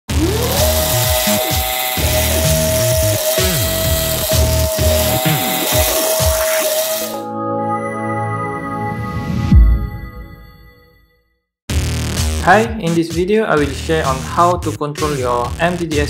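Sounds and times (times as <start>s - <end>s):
electric motors whirring: 0.1s - 7.2s
intro music: 0.1s - 10.7s.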